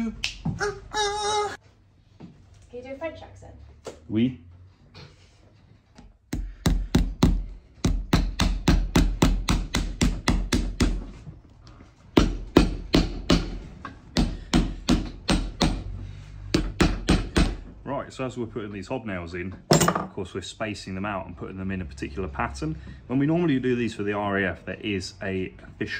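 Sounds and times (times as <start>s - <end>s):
hammer striking nails into leather: 6.3s - 11.1s, 12.2s - 15.9s, 16.5s - 17.6s.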